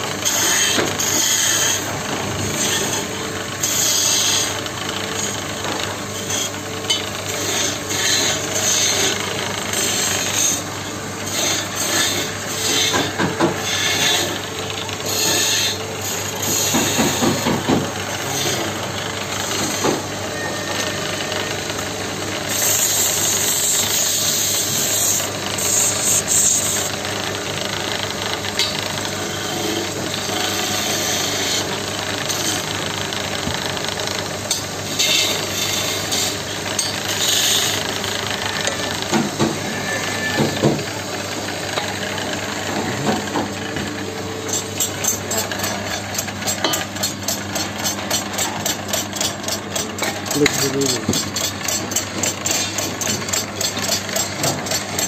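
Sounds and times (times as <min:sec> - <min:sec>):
chisel scraping spinning wood: 0:00.0 - 0:55.0
wood lathe humming: 0:00.0 - 0:55.0.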